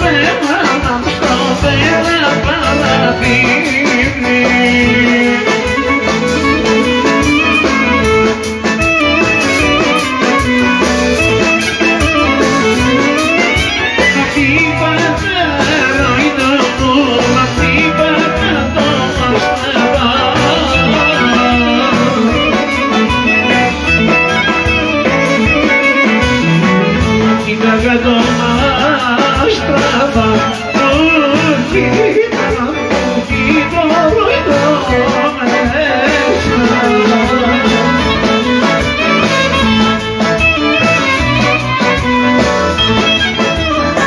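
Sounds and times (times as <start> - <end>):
man singing into microphone: 0.0 - 10.3, 11.2 - 42.0, 42.7 - 44.0
clarinet-led folk dance band: 0.0 - 44.0.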